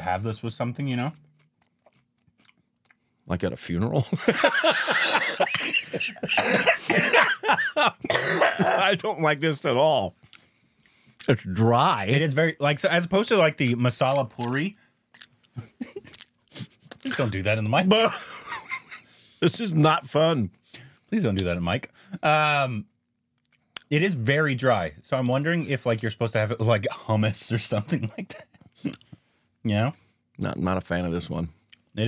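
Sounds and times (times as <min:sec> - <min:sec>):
man speaking: 0:00.0 - 0:01.2, 0:03.3 - 0:10.2, 0:11.2 - 0:14.8, 0:17.1 - 0:18.3, 0:19.4 - 0:20.5, 0:21.1 - 0:22.8, 0:23.8 - 0:28.4, 0:29.7 - 0:32.0
crunching of cracker being chewed: 0:01.4 - 0:03.0, 0:14.4 - 0:17.0.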